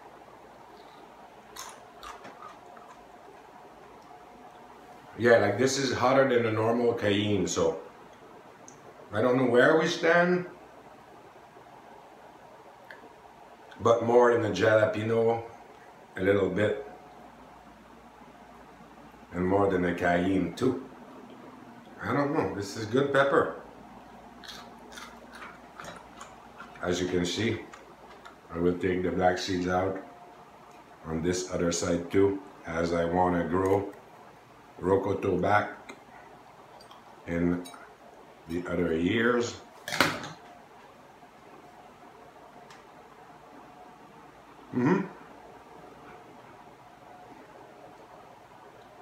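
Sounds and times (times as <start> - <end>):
faint steady hum: 0.0 - 49.0
man speaking: 5.2 - 7.9, 13.8 - 15.5, 16.2 - 17.0, 19.3 - 20.9, 22.0 - 23.6, 26.8 - 27.8, 28.5 - 30.1, 31.0 - 34.0, 34.8 - 35.9, 37.3 - 37.8, 38.5 - 39.7.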